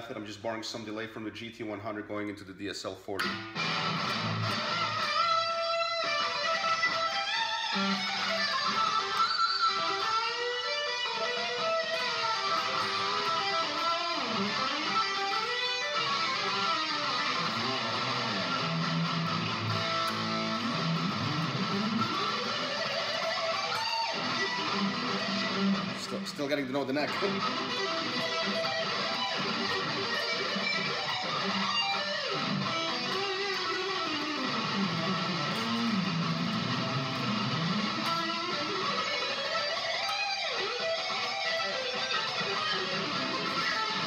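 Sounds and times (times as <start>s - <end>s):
electric guitar lead line: 3.2s - 44.0s.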